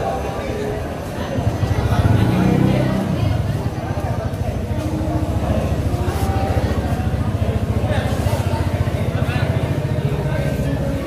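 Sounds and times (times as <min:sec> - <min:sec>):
background voices: 0:00.0 - 0:11.0.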